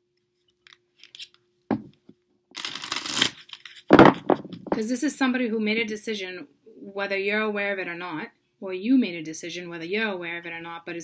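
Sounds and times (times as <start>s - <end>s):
faint steady hum: 0.0s - 11.0s
cards shuffling: 0.6s - 1.9s, 2.6s - 4.8s
knock: 1.7s - 1.9s, 3.9s - 4.8s.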